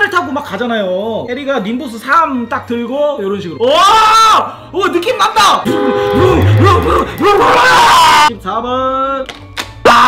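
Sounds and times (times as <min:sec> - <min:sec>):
man making playful vocal sounds: 0:06.2 - 0:07.6.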